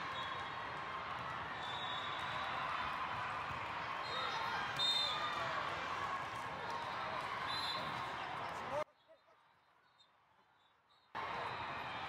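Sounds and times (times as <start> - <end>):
din of spectators: 0.0 - 8.8, 11.2 - 12.0
referee's whistle: 1.6 - 2.4, 4.0 - 5.4, 7.5 - 8.0.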